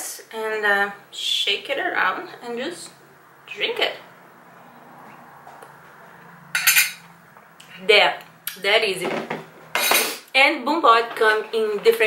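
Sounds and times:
metal spoon clattering on glass: 0:06.6 - 0:07.0.

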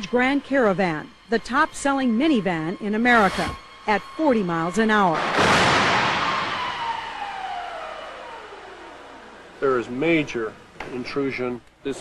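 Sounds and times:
tone sliding down in pitch: 0:00.0 - 0:10.2
car crash noise: 0:05.2 - 0:09.0.

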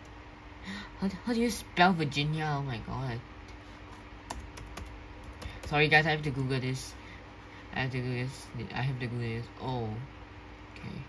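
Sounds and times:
person speaking: 0:00.7 - 0:03.3, 0:04.4 - 0:07.1, 0:07.7 - 0:10.1.

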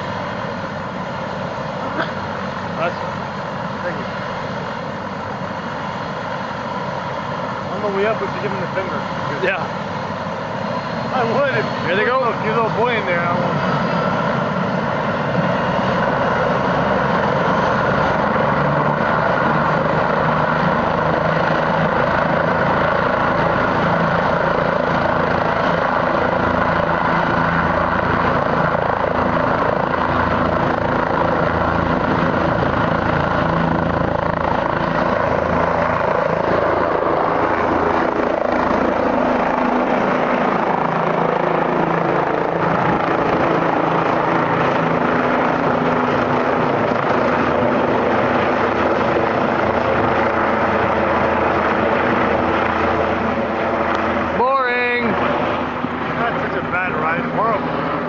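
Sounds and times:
helicopter rotor and engine whine: 0:00.0 - 0:58.0.

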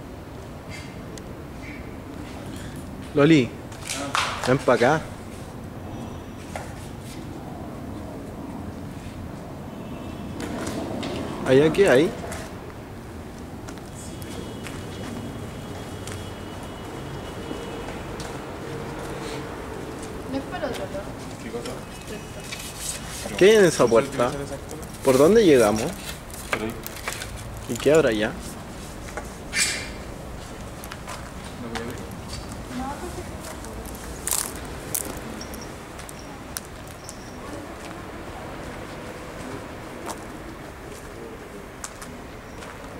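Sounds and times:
footsteps of people walking: 0:12.2 - 0:42.9
light clicks and scuffs: 0:17.8 - 0:23.4, 0:24.2 - 0:37.2
footsteps through dry vegetation: 0:33.3 - 0:35.3.

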